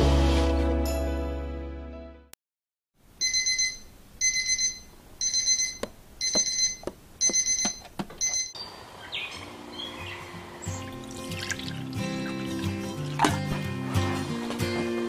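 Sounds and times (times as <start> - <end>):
alarm clock beeping: 3.2 - 8.6.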